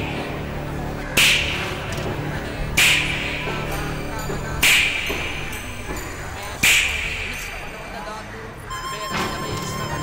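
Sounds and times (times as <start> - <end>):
low soundtrack bed: 0.0 - 8.5.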